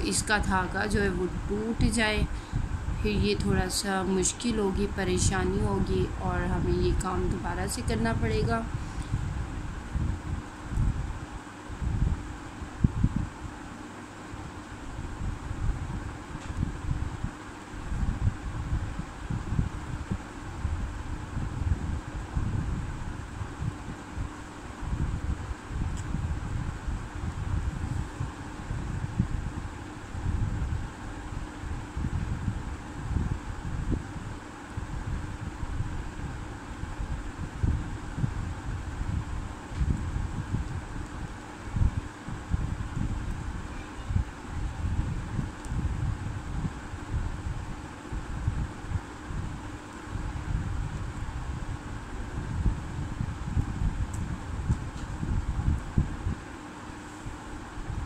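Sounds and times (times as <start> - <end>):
wind buffeting microphone: 0.0 - 13.6, 14.9 - 56.5
faint steady hum: 0.0 - 58.0.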